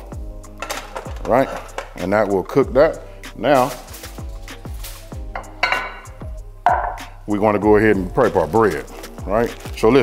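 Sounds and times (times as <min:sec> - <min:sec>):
background music with a beat: 0:00.0 - 0:10.0
glass dish knocking on wood: 0:05.4 - 0:06.1, 0:06.7 - 0:07.0.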